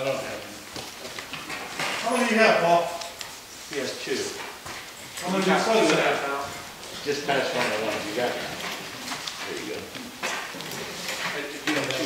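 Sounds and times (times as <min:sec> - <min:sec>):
papers being handled: 0:00.0 - 0:12.0.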